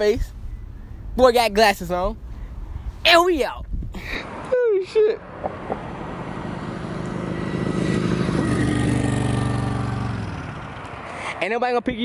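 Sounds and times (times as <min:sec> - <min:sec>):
motorcycle passing by: 0:04.2 - 0:11.6.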